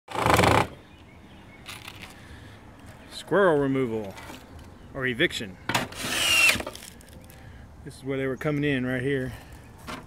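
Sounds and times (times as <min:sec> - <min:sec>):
cordless drill burst: 0:05.9 - 0:06.8.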